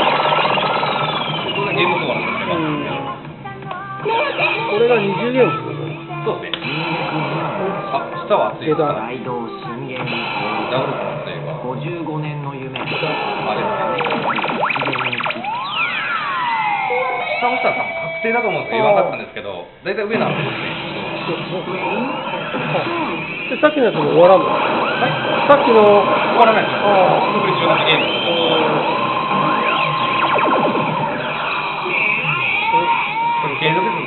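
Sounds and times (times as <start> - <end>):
synthesized slot machine sweeps: 0.0 - 3.2, 4.3 - 8.9, 12.8 - 19.4, 20.2 - 34.0
background din: 0.0 - 34.0.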